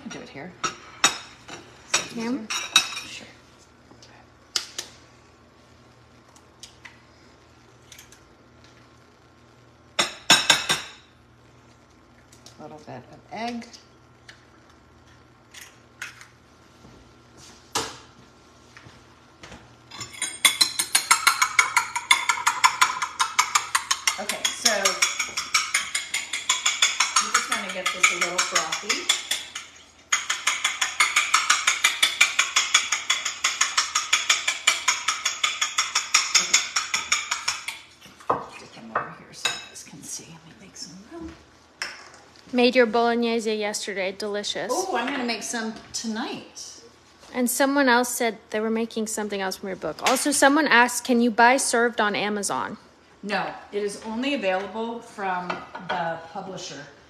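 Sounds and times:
fork beating eggs in glass bowl: 19.9s - 38.3s
eggs being cracked: 20.2s - 37.9s.

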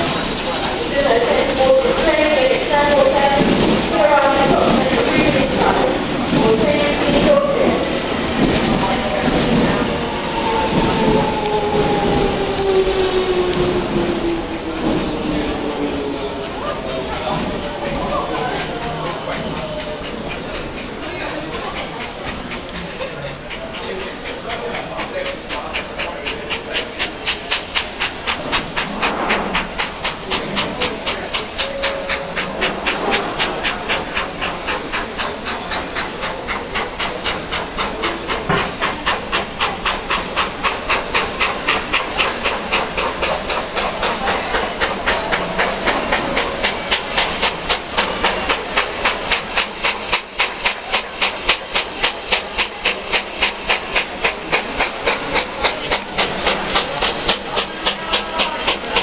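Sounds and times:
hiss of steam: 0.0s - 59.0s
steam locomotive puffing: 0.0s - 59.0s.

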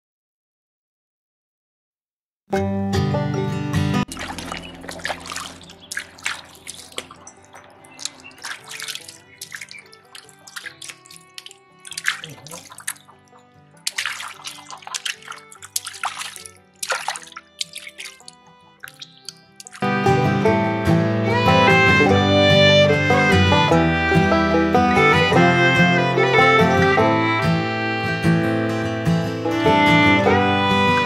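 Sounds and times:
water splashing in a plastic bucket: 4.1s - 20.2s
faint music: 4.1s - 20.4s.

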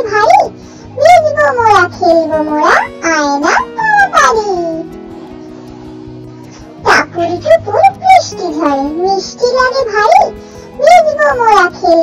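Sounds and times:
child-like voice singing rhyme: 0.0s - 4.8s
backing music track: 0.0s - 12.0s.

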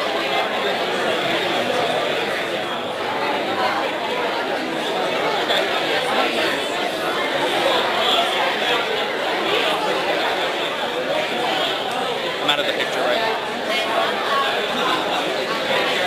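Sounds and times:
babble of overlapping conversations: 0.0s - 16.0s.

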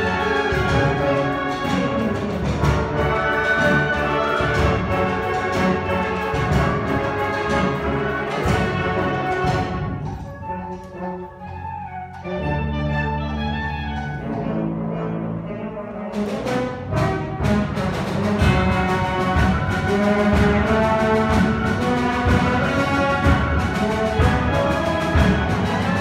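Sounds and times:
percussion strokes: 0.0s - 12.2s
symphonic band playing: 0.0s - 26.0s.

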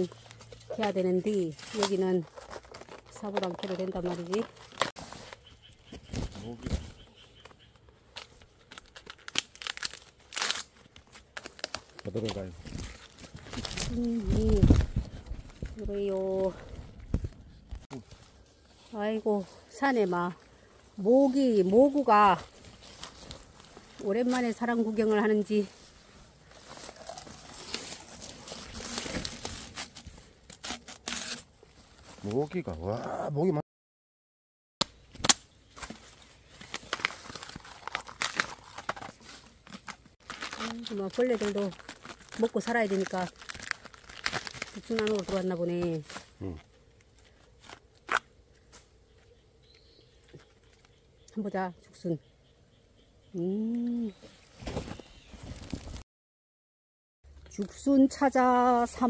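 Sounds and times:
bamboo stalks snapping: 0.0s - 6.8s, 7.4s - 16.4s, 26.6s - 31.5s, 34.8s - 48.8s
leaves and stems rustling: 0.0s - 32.8s, 35.0s - 51.6s, 53.5s - 56.0s.

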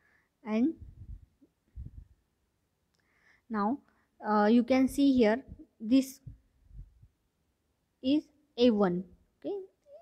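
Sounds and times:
woman speaking: 0.4s - 0.9s, 3.5s - 6.3s, 8.0s - 9.7s.

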